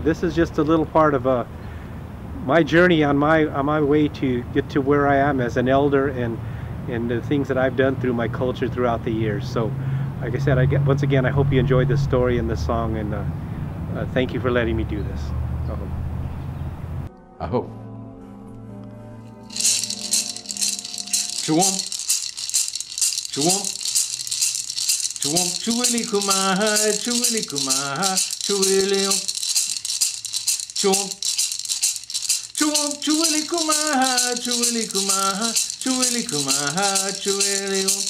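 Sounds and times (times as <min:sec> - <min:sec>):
gourd rattle shaken: 0:19.4 - 0:38.0
man singing: 0:25.2 - 0:29.3, 0:30.8 - 0:31.2, 0:32.6 - 0:38.0.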